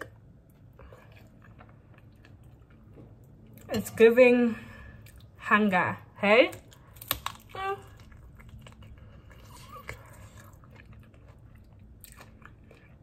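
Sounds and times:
person chewing food: 0.0s - 3.7s, 5.0s - 5.4s, 6.6s - 13.0s.

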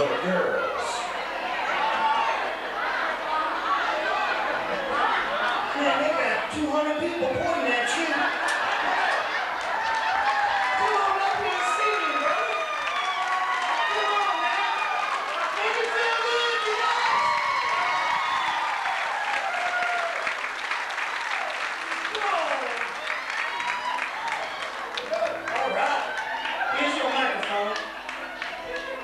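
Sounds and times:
audience cheering and shouting: 0.0s - 29.0s
audience clapping: 8.2s - 29.0s.

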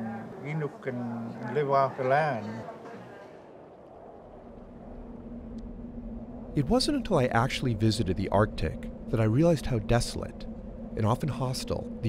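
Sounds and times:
faint steady hum: 0.0s - 12.0s
low steady rumble: 3.8s - 12.0s.

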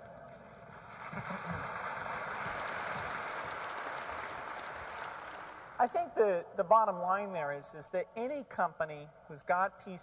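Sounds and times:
large audience applauding: 0.3s - 5.8s.

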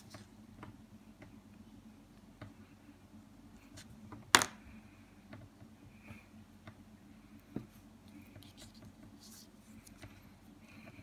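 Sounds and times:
low steady hum: 0.0s - 11.0s
skin rubbing: 8.1s - 10.0s.

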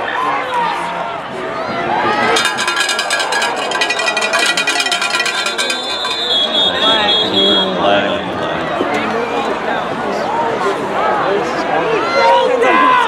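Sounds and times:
football crowd noise: 0.0s - 13.0s
dense rapid clatter: 2.3s - 6.7s
referee's whistle: 5.9s - 7.8s.

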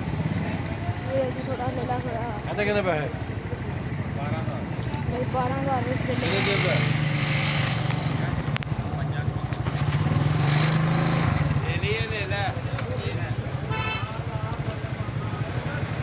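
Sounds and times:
small motorcycle engine running: 5.2s - 16.0s
background voices: 11.6s - 16.0s.

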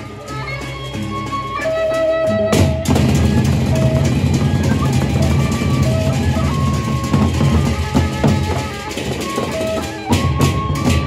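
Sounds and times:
barrel drums beaten: 2.6s - 11.0s.

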